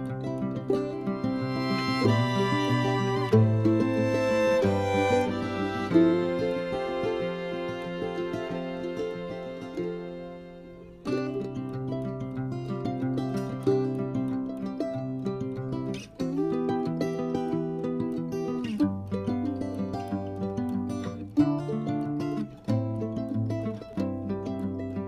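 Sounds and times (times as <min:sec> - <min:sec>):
plucked string music: 0:00.0 - 0:25.0.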